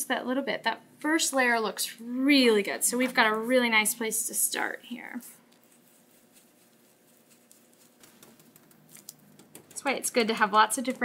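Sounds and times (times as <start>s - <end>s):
stencil brush scratching and tapping: 5.5s - 10.0s.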